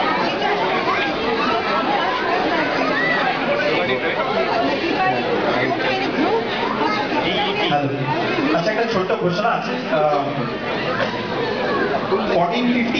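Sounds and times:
crowd chatter: 0:00.0 - 0:12.9.

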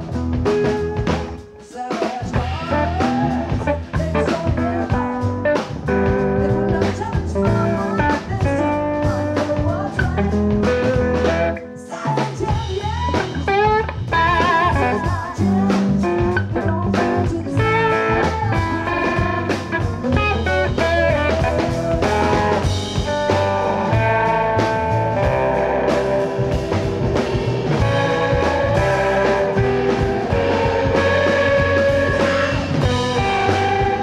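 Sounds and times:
bass: 0:00.0 - 0:34.0
drum kit: 0:00.0 - 0:34.0
electric guitar melody: 0:00.0 - 0:34.0.

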